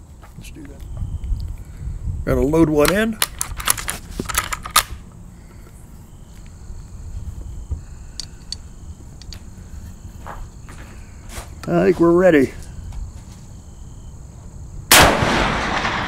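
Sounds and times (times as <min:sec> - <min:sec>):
rifle loading metallic clicks: 0:02.8 - 0:05.0.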